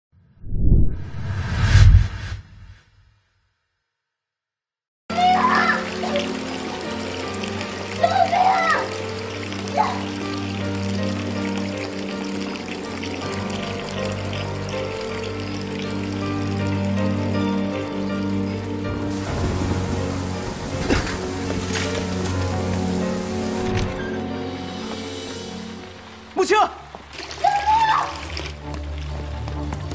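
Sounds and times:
dramatic film score: 0:05.1 - 0:29.9
water pouring into a tank: 0:05.2 - 0:16.9, 0:19.1 - 0:24.0, 0:27.0 - 0:29.2
heavy rain hiss: 0:19.1 - 0:24.0.

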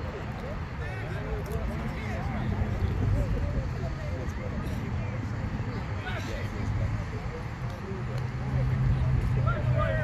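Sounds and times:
distant indistinct voices: 0:00.0 - 0:10.0.

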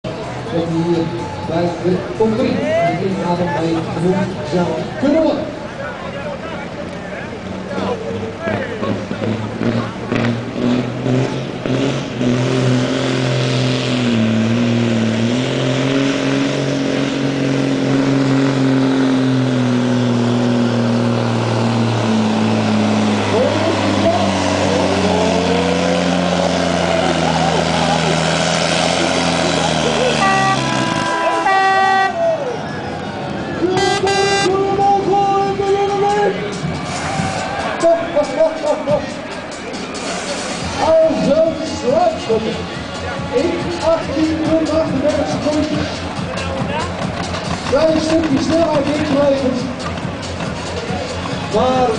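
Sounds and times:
truck diesel engine under heavy load: 0:00.0 - 0:51.9
horn blasts: 0:30.0 - 0:32.3, 0:33.7 - 0:34.8.

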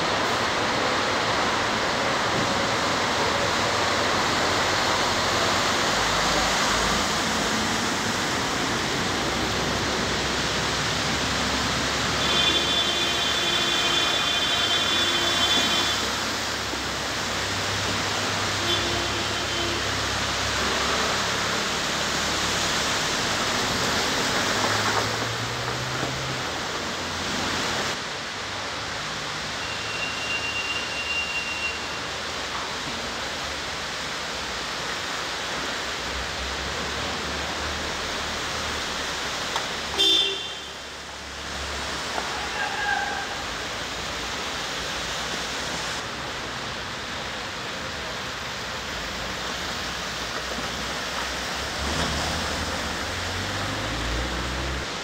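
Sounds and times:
water churning and splashing: 0:00.0 - 0:29.5, 0:32.0 - 0:55.0
vehicle engines: 0:00.0 - 0:55.0
car horn toot: 0:12.2 - 0:16.1, 0:40.0 - 0:40.8.

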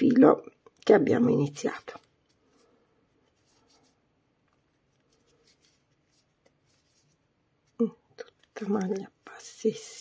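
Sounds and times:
crochet hook rustling yarn: 0:01.1 - 0:10.0.

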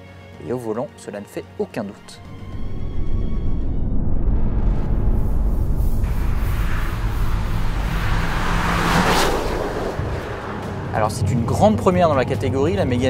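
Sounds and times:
car driving past at speed: 0:04.8 - 0:11.6.

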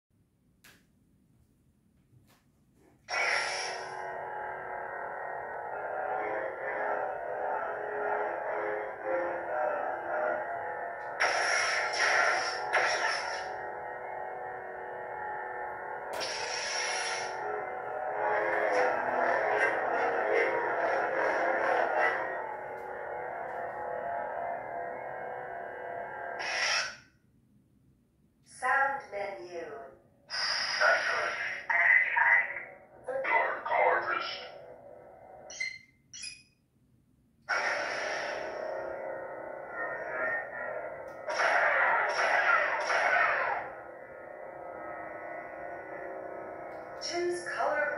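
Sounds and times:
lightsaber humming: 0:03.0 - 0:27.0, 0:37.5 - 0:47.9.

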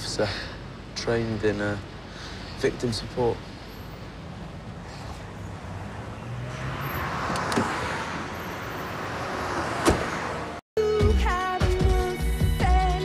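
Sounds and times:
street traffic: 0:00.0 - 0:10.6
car passing by: 0:04.2 - 0:10.6.

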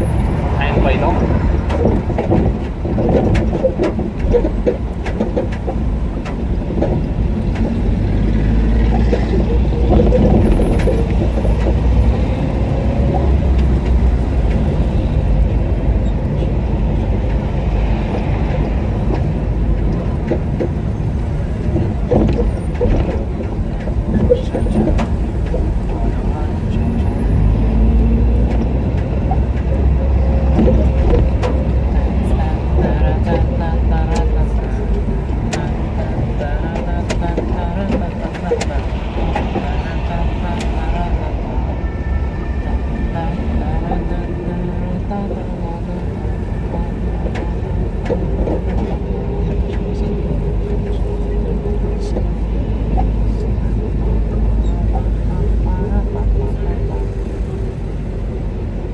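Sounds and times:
car engine and road rumble: 0:00.0 - 0:58.9
indistinct voices: 0:00.0 - 0:58.9.

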